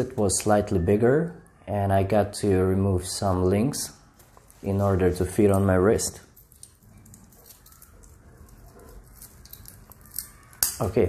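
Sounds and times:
metal bracelet links clinking: 0:06.3 - 0:10.8.

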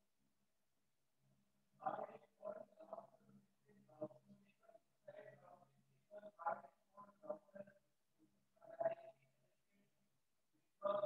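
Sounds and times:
faint muffled voice: 0:01.8 - 0:07.8, 0:08.6 - 0:09.8, 0:10.8 - 0:11.0.

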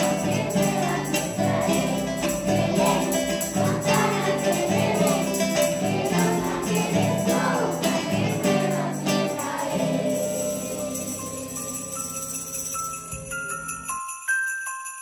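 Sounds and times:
children's choir singing: 0:00.0 - 0:11.9
children's choir singing a christmas song: 0:00.0 - 0:12.6.

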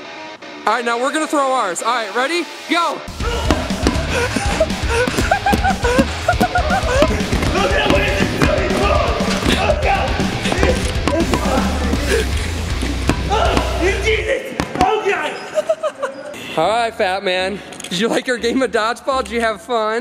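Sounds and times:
background music: 0:00.0 - 0:20.0
people shouting: 0:03.1 - 0:15.2
people laughing: 0:03.2 - 0:14.3, 0:15.1 - 0:16.6
dodgeballs thumping: 0:03.2 - 0:15.1.

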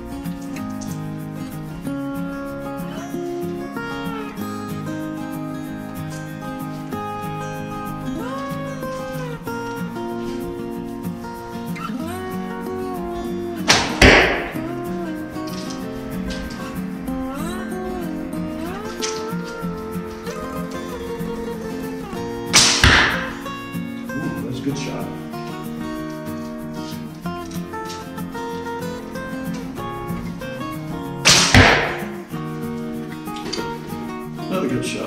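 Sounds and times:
guitar music: 0:00.0 - 0:35.0
bow shot snap: 0:13.7 - 0:14.8, 0:22.5 - 0:23.4, 0:31.2 - 0:32.3.

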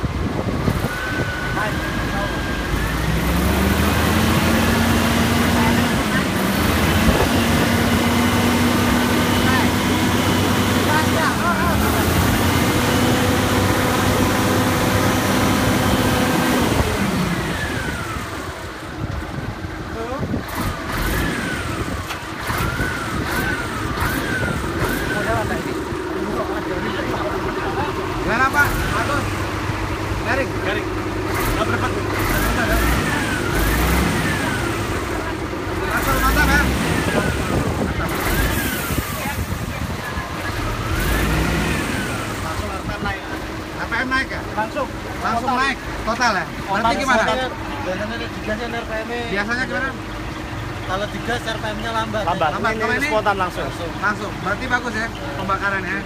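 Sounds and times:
diesel truck engine revving: 0:00.0 - 0:56.0.

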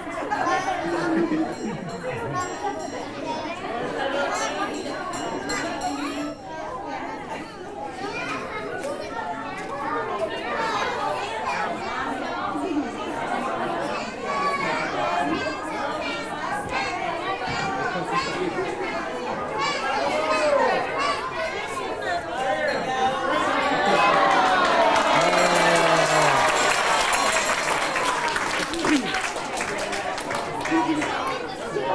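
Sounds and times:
children and adults chattering: 0:00.0 - 0:31.9.

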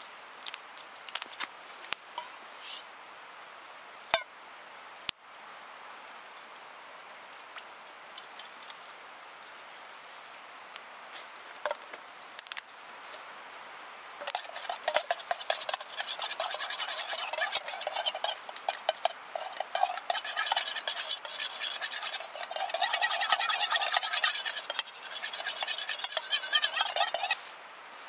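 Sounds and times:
utensil scraping metal bowl: 0:14.2 - 0:27.4.

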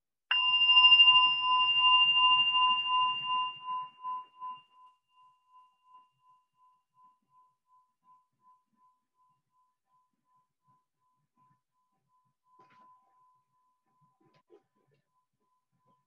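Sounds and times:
meditation bell ringing: 0:00.3 - 0:09.1.

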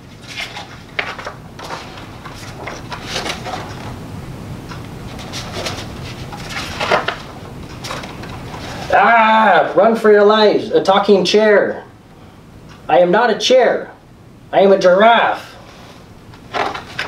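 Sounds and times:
soft rustles and clicks: 0:00.0 - 0:04.0, 0:04.6 - 0:08.9
steady low hiss: 0:00.0 - 0:17.0
paper page flipping: 0:00.1 - 0:03.9, 0:05.1 - 0:08.9.

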